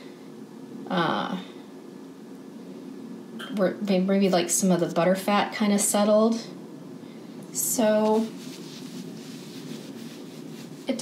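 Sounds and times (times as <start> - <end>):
woman speaking: 0.9 - 1.5, 3.4 - 6.6, 7.5 - 8.4, 10.8 - 11.0.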